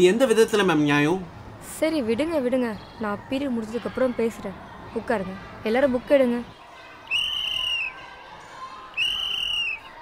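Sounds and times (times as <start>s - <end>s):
sports whistle blasts: 7.1s - 8.0s, 9.0s - 9.9s.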